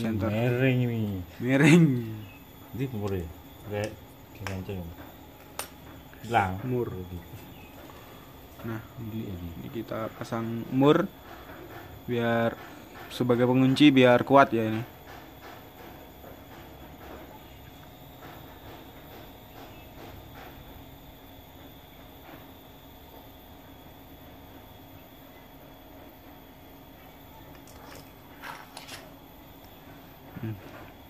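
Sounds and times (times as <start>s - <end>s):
low room hum: 0.0s - 31.0s.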